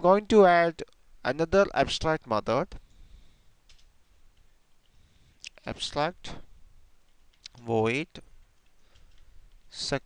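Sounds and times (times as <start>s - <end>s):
soft keyboard typing: 7.0s - 9.8s.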